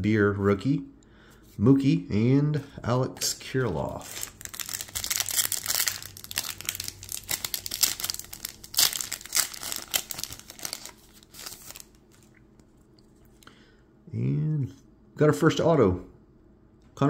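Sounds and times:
wrapper tearing and crinkling: 3.6 - 12.3.

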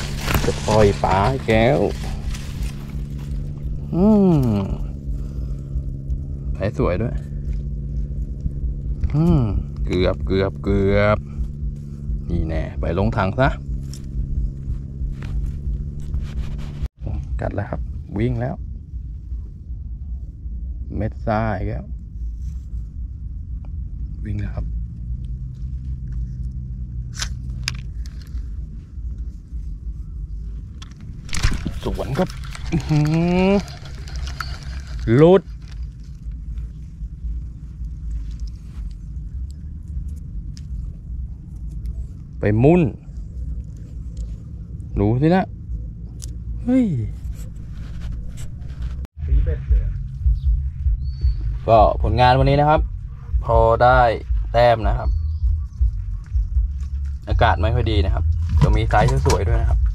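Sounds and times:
dry leaves rustling: 0.0 - 6.4, 13.6 - 16.9, 27.4 - 39.4
low motor-like drone: 0.0 - 59.9
wind rumble on microphone: 0.0 - 59.9
man murmuring: 3.8 - 5.0, 9.0 - 9.8.

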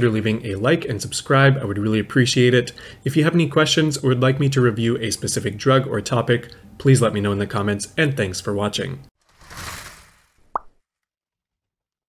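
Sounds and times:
whoosh: 9.2 - 10.5.

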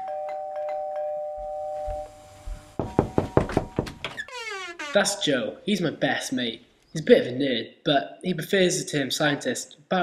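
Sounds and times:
two-tone doorbell chime: 0.0 - 2.2.

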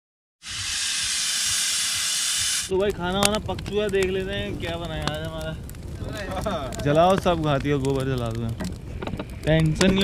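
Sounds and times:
pressure cooker steam hiss: 0.4 - 2.7.

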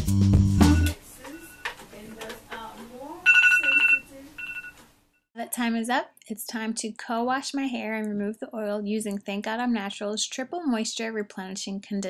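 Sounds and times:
background music: 0.0 - 1.2
phone timer alarm beeping: 0.6 - 1.8, 3.2 - 4.8
woman speaking: 0.9 - 4.4, 5.4 - 12.0.

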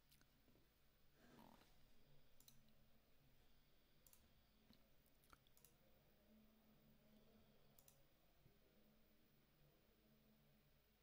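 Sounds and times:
faint computer mouse clicks: 4.0 - 5.8, 7.8 - 8.0.

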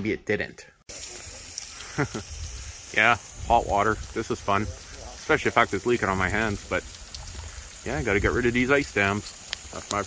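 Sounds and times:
hose nozzle water jet hissing: 0.9 - 10.0.

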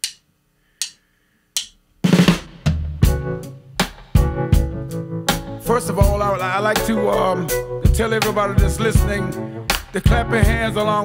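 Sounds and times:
drum kit hits: 2.0 - 7.0
electric bass: 3.0 - 11.0
keyboard: 3.0 - 11.0
guitar: 4.1 - 11.0.

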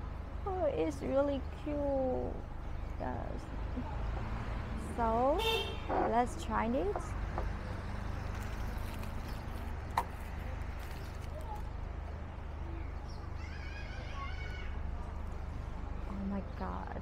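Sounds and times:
distant traffic rumble: 0.0 - 17.0.

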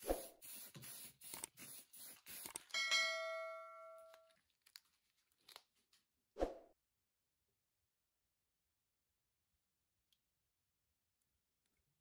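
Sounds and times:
spray paint can hissing: 0.0 - 2.9
bell-like ding: 2.8 - 4.2.

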